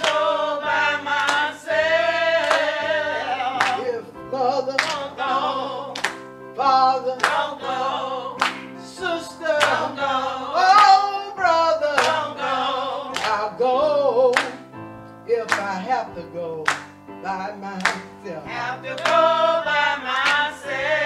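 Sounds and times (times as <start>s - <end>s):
women singing gospel: 0.0s - 14.7s, 15.3s - 21.0s
instrumental accompaniment: 0.0s - 21.0s.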